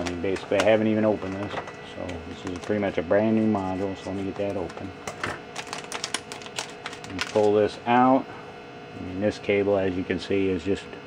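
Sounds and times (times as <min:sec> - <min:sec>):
plastic bag crinkling: 0:00.0 - 0:01.5, 0:05.5 - 0:07.6.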